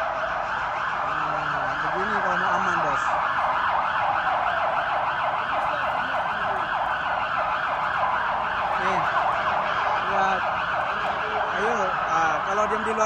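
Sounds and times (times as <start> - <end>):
police siren yelping: 0.0 - 13.0.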